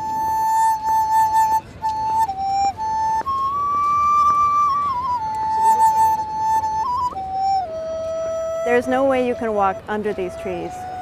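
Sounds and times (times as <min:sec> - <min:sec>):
bamboo flute melody: 0:00.0 - 0:11.0.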